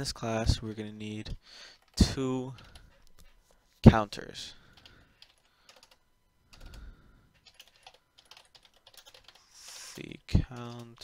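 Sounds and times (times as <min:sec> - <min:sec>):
typing on computer keyboard: 0:01.8 - 0:02.8, 0:04.8 - 0:11.0.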